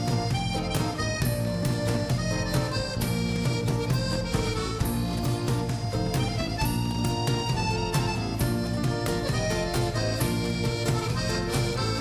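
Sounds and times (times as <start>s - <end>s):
drums: 0.0s - 12.0s
guitar: 0.0s - 12.0s
melody of long held notes: 0.0s - 12.0s.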